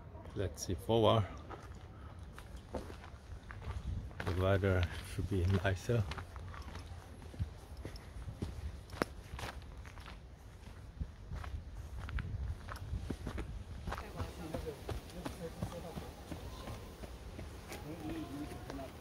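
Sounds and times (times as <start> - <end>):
footsteps on leaves and stones: 1.5 - 19.0.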